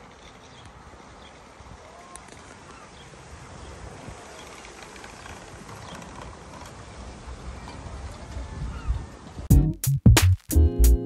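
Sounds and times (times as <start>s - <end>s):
faint distant voices: 0.7s - 9.5s.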